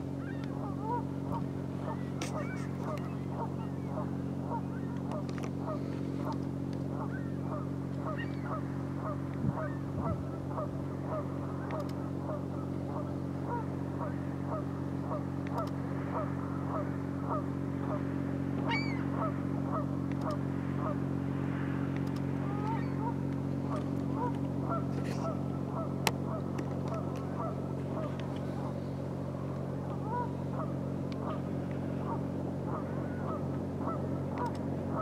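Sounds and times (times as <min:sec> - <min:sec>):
geese honking: 0:00.0 - 0:21.2, 0:22.3 - 0:35.0
low engine hum: 0:00.0 - 0:35.0.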